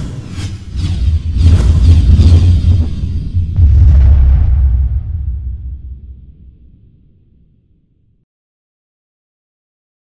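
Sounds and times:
deep bass rumble: 1.4 - 7.3.

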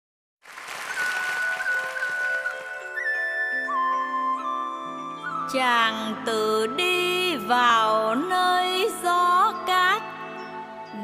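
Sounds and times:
audience applause: 0.4 - 3.4.

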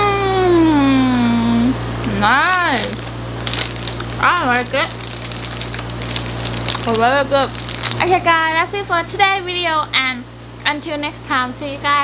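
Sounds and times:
woman humming: 0.0 - 2.4.

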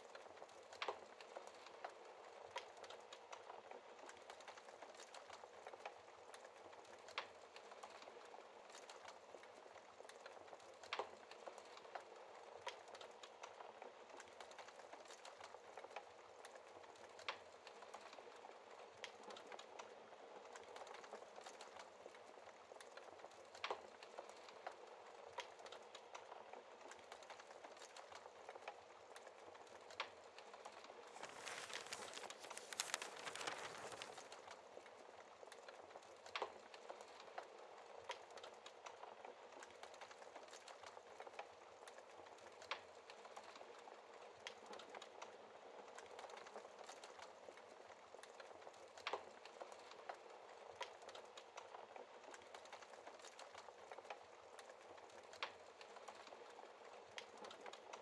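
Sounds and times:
wood fire crackling: 0.0 - 58.0.

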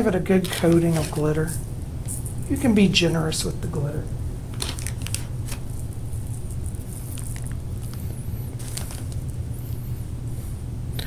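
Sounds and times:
steady low hum: 0.0 - 11.0
glitter rustling: 4.0 - 10.0.

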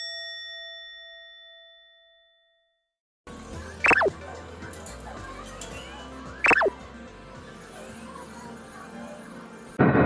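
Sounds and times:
background music: 3.3 - 9.8.

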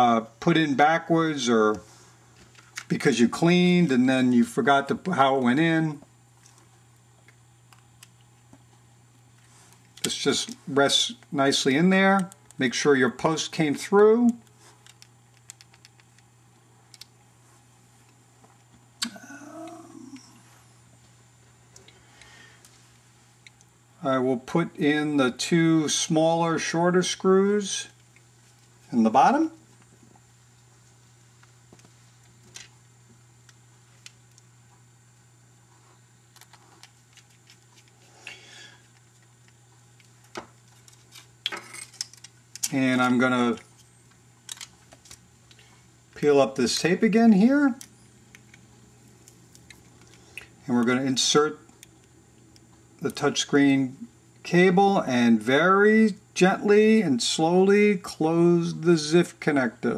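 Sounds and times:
low steady hum: 0.0 - 59.9.

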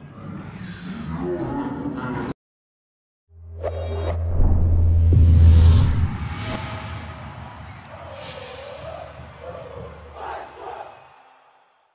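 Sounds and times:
crowd shouting: 6.2 - 11.9.

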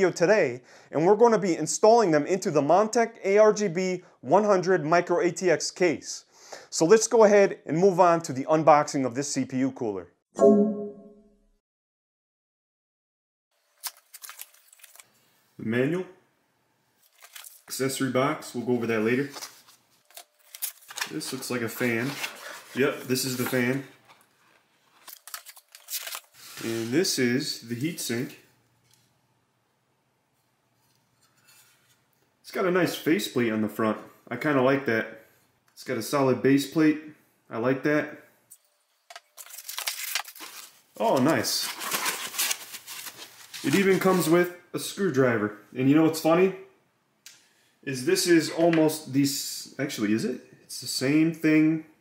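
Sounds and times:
paper rustling: 13.8 - 15.2, 17.0 - 17.9, 18.8 - 27.1, 39.1 - 44.4
foam rustling against cardboard: 39.6 - 44.4.

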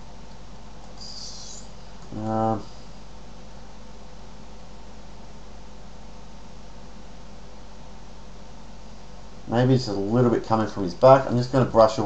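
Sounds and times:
background hiss: 0.0 - 12.0
faint electrical hum: 0.0 - 12.0
soft high hiss: 0.0 - 12.0.

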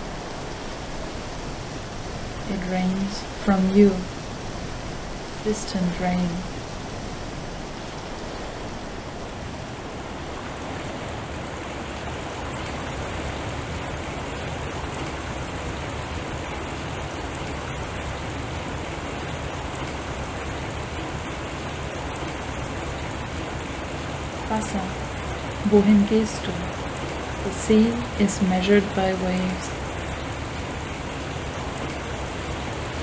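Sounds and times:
rain-like hiss: 0.0 - 33.0.

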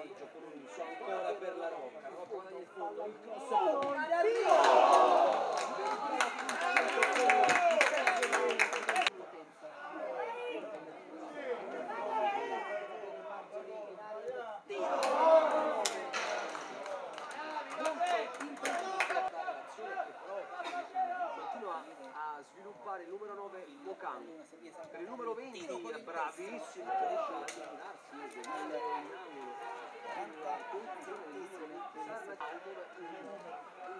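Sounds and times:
crowd shouting and talking: 3.0 - 22.5, 25.8 - 33.9
sharp claps: 5.5 - 9.1, 15.8 - 19.3.

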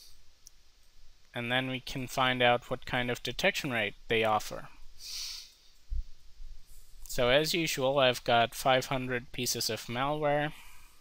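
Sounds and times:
short breath: 5.0 - 5.6, 10.5 - 11.0.

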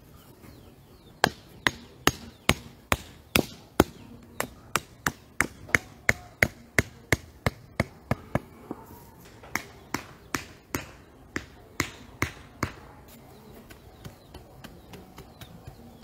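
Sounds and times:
hammer striking wood: 1.2 - 8.5, 9.4 - 12.8.

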